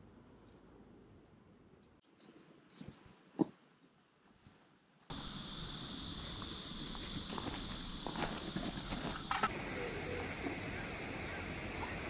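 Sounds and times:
steady high hiss: 0:05.1 - 0:12.0.

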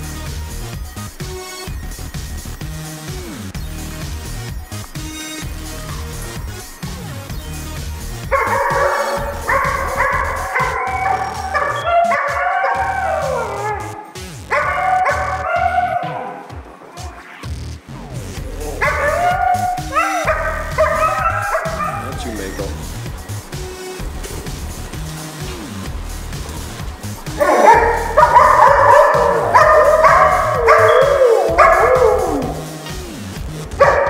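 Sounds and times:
music with steady beat: 0:00.0 - 0:34.0
dogs howling and yipping: 0:05.7 - 0:17.5, 0:18.4 - 0:32.9, 0:33.7 - 0:34.0.

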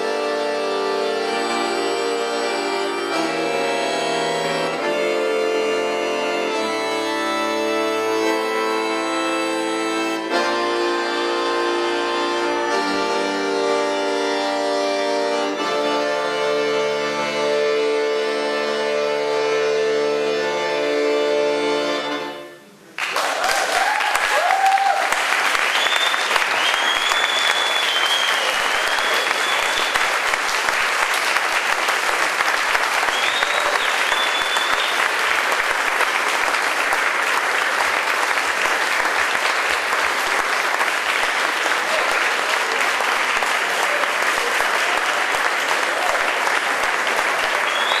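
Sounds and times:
audience applauding: 0:22.9 - 0:48.0
people cheering: 0:23.0 - 0:48.0.

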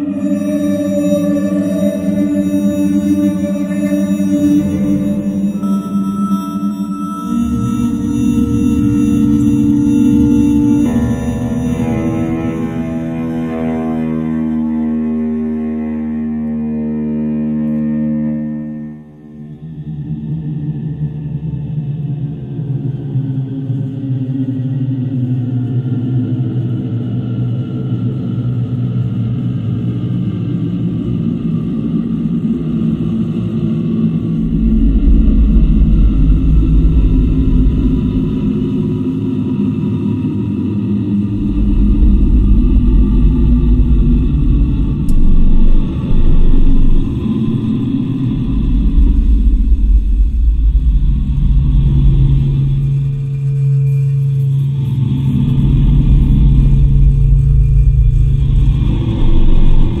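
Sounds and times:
higher held tone: 0:00.0 - 0:19.6, 0:41.0 - 1:00.0
electronic drone music: 0:00.0 - 0:21.0, 0:30.0 - 1:00.0
deep hum: 0:00.0 - 0:23.2, 0:30.3 - 1:00.0
sub-bass swells: 0:00.0 - 0:23.9, 0:28.1 - 1:00.0.

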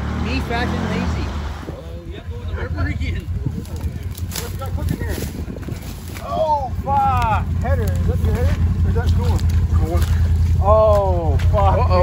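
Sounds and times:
engine low rumble: 0:00.0 - 0:12.0
voices calling out: 0:00.0 - 0:12.0.

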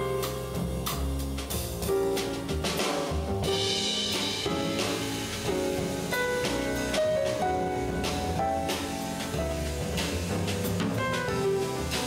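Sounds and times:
double bass: 0:00.0 - 0:12.0
drum kit with cymbals: 0:00.0 - 0:12.0
grand piano: 0:00.0 - 0:12.0.

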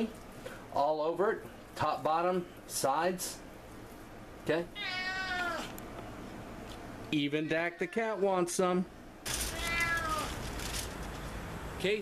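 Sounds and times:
low background hum: 0:00.0 - 0:12.0
cat meowing: 0:04.8 - 0:05.8, 0:09.4 - 0:10.4.

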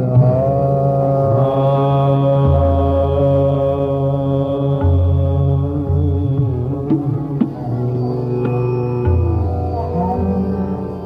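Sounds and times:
man singing classical vocal: 0:00.0 - 0:11.0
tanpura drone: 0:00.0 - 0:11.0.

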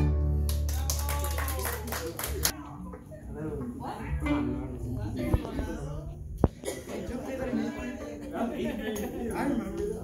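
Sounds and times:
people clapping: 0:00.3 - 0:03.8.

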